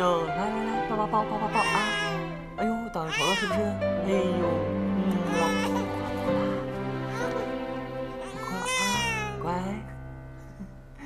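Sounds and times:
soft background music: 0:00.0 - 0:11.0
baby crying: 0:01.5 - 0:02.4, 0:03.0 - 0:04.4, 0:05.1 - 0:09.5.

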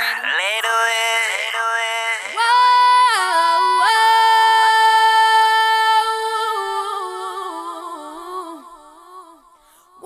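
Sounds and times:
woman singing in harmony: 0:02.3 - 0:10.0.

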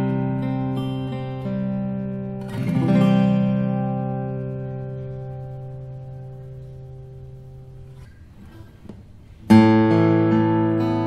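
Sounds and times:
acoustic guitar chord strummed: 0:00.0 - 0:11.0.

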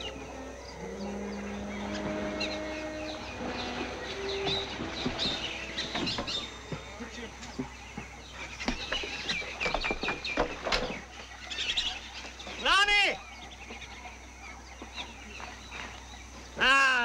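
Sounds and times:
loud animal calls: 0:00.0 - 0:09.8.

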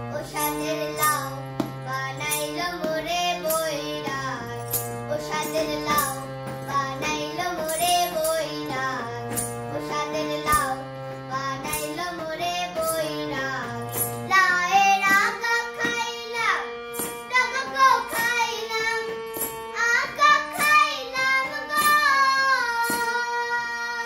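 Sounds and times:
child singing: 0:00.0 - 0:24.0
harmonium notes: 0:00.0 - 0:24.0.

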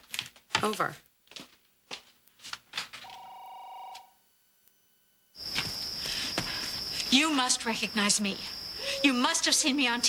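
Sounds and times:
two-pitch telephone tone: 0:03.0 - 0:05.4.

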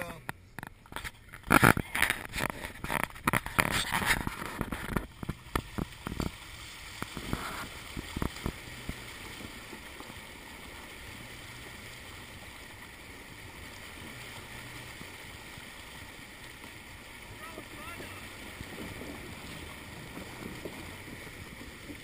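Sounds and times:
car driving through water splashing: 0:00.9 - 0:22.0.

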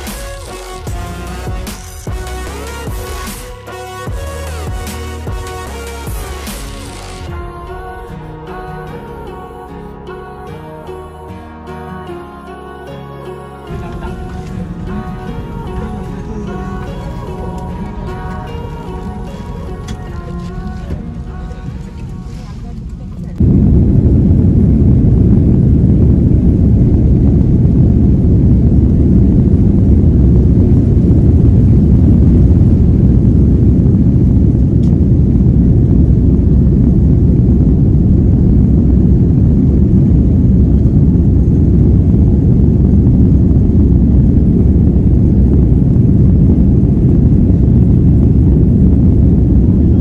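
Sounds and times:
jet engines deep rumble: 0:13.7 - 0:50.0.

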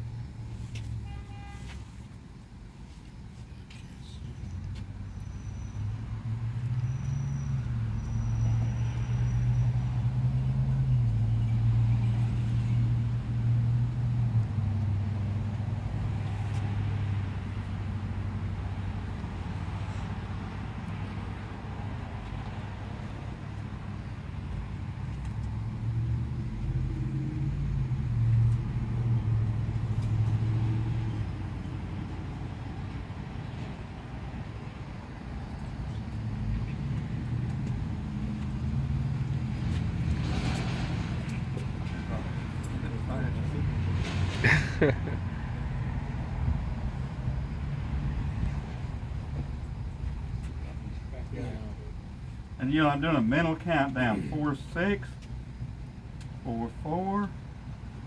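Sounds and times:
low engine-like hum: 0:00.0 - 0:58.0.

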